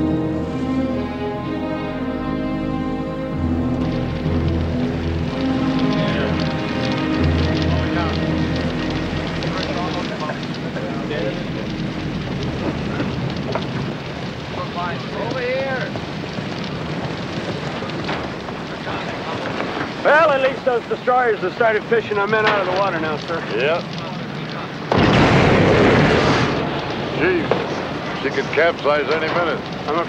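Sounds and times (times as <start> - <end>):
sad orchestral music: 0.0 - 14.0.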